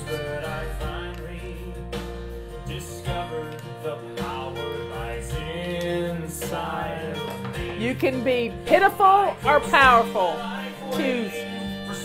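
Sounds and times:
person singing: 0.0 - 12.0
strummed acoustic guitar: 0.0 - 12.0.

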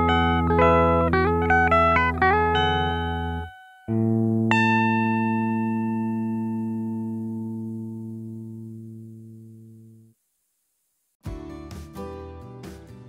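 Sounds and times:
electric guitar melody with bends: 0.0 - 9.6.

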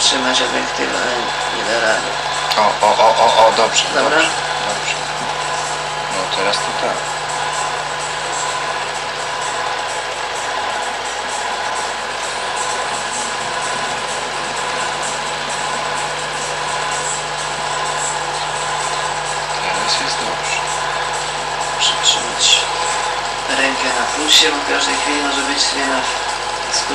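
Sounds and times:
film projector whirring: 0.0 - 26.9.

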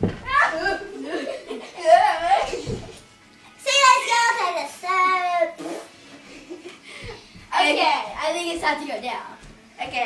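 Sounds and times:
girl squealing: 0.3 - 0.9.

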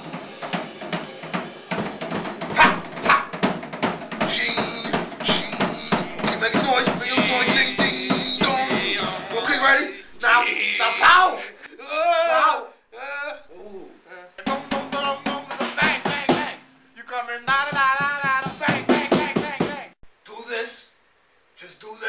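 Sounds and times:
men singing and wailing: 2.5 - 3.4, 4.1 - 20.0.

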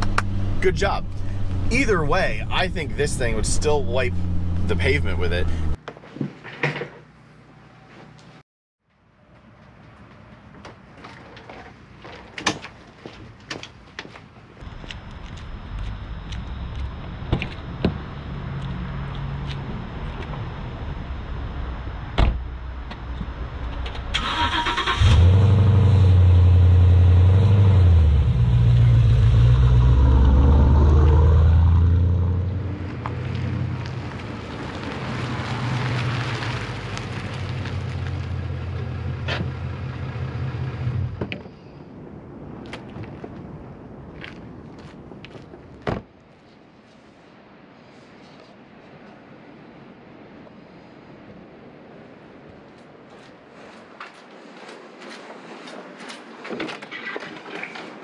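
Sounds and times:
car engine revving and idling: 0.0 - 5.8, 24.6 - 34.2
low engine hum: 0.0 - 5.8, 14.6 - 24.2, 25.0 - 41.3.

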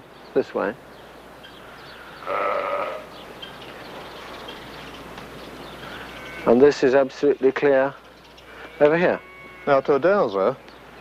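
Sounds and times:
farm animal bleating: 2.2 - 3.2, 5.8 - 7.0, 8.5 - 10.3.

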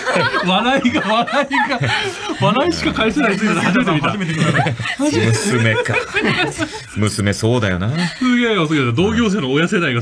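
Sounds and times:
people laughing: 0.0 - 7.2.

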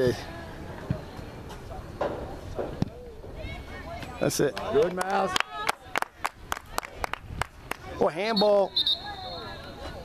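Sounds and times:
distant voices of players and spectators: 0.0 - 10.0
open-air background: 0.0 - 10.0.

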